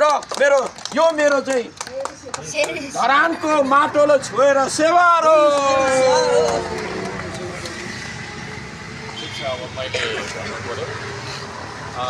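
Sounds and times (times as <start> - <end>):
vehicle engine rumbling: 2.2 - 12.0.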